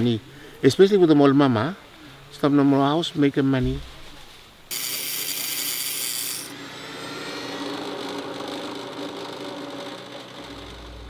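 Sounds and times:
bench grinder grinding shell: 0:04.7 - 0:11.0.

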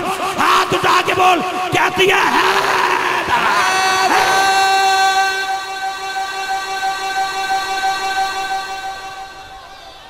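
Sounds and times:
man chanting over loudspeaker: 0:00.0 - 0:09.7.

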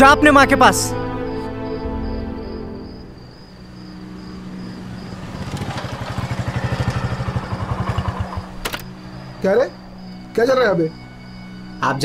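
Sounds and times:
motorcycle engine running: 0:03.9 - 0:09.4
sharp click: 0:08.6 - 0:08.9.

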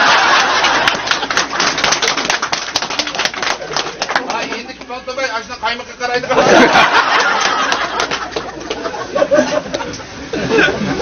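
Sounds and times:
people clapping: 0:00.0 - 0:06.0, 0:06.8 - 0:09.0.

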